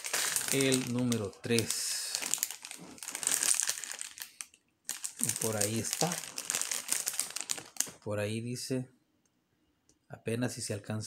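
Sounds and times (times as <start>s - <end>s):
plastic bag crinkling: 0.0s - 8.1s.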